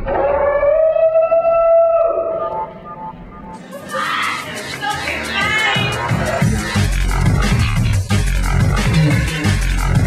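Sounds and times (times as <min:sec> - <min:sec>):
music: 0:02.2 - 0:10.0.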